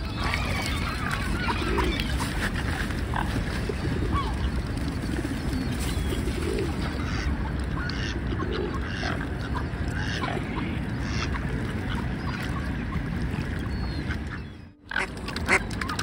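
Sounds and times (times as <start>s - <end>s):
ducks calling: 0.0s - 16.0s
steady low rumble: 0.0s - 16.0s.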